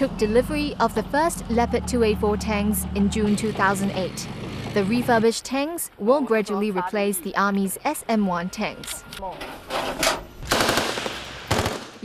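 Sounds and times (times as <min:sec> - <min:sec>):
rapid machine-gun fire: 0:10.5 - 0:12.0.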